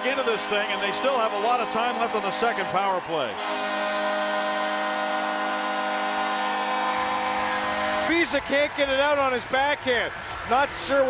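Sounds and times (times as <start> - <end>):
goal horn: 0.0 - 10.4.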